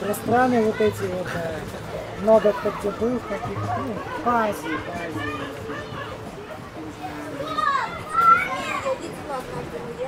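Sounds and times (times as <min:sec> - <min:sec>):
children shouting: 0:02.4 - 0:06.6, 0:07.3 - 0:09.0.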